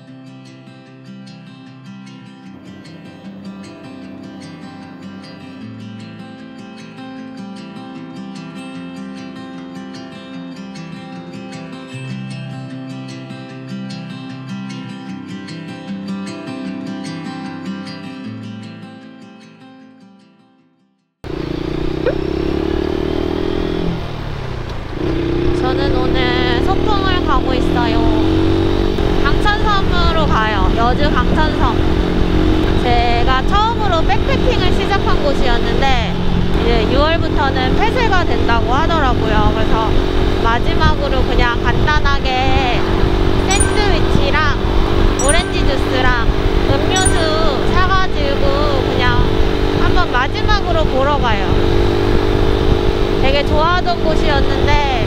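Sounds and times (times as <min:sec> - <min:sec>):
motorcycle engine revving: 0:21.3 - 0:55.0.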